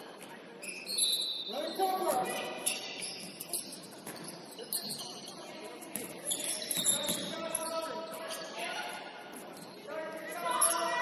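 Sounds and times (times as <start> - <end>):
shoes squeaking on hardwood floor: 0.6 - 8.6.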